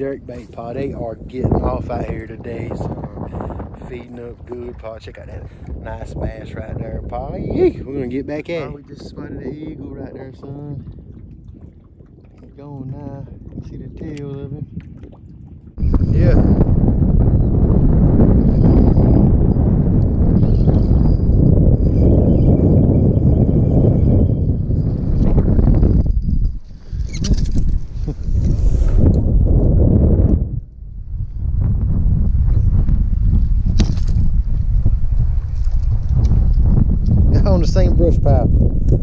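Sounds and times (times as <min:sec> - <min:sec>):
wind buffeting microphone: 0:00.0 - 0:39.0.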